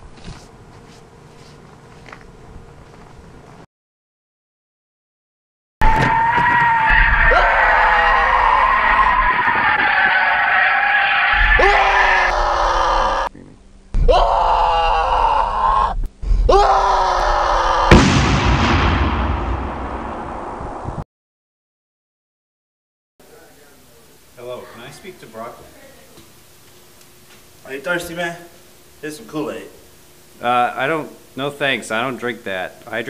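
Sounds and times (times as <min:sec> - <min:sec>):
people screaming and yelling: 0:05.8 - 0:13.3, 0:14.0 - 0:18.0
sudden loud burst of noise: 0:17.9 - 0:21.0.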